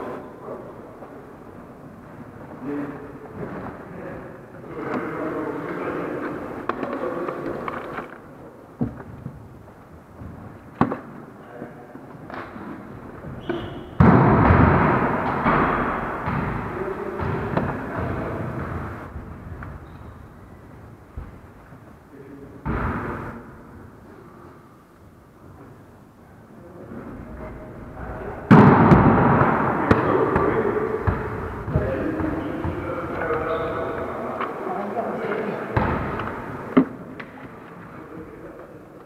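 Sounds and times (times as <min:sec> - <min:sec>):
volleyball hit bang with echo: 0:13.4 - 0:19.0, 0:22.6 - 0:23.4, 0:28.5 - 0:32.8.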